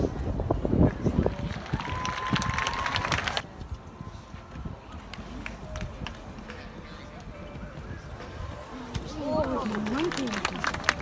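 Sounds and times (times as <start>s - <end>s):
crowd applause: 1.4s - 3.4s, 9.4s - 11.0s.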